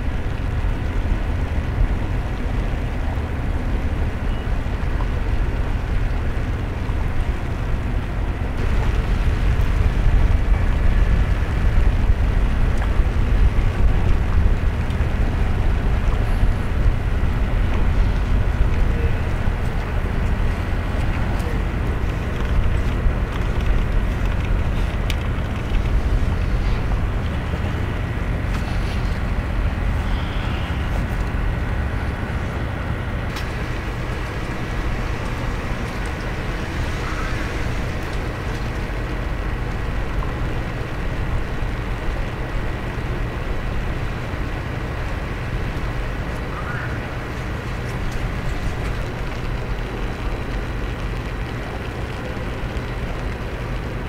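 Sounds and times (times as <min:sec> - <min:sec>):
low rumble: 0:00.0 - 0:54.0
rain hiss: 0:00.0 - 0:54.0
wind noise on microphone: 0:00.0 - 0:54.0
faint thin whine: 0:08.1 - 0:40.6
hiss: 0:29.9 - 0:31.1, 0:33.3 - 0:38.5.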